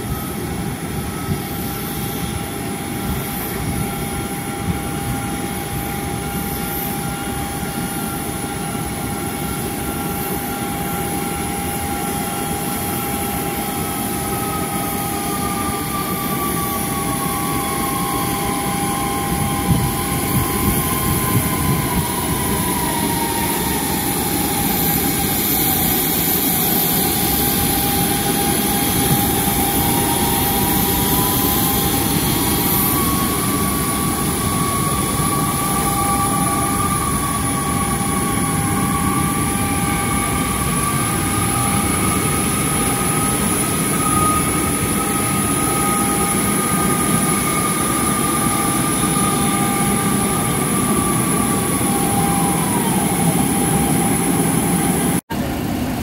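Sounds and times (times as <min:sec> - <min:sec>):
turbine whine and rush: 0:00.0 - 0:56.0.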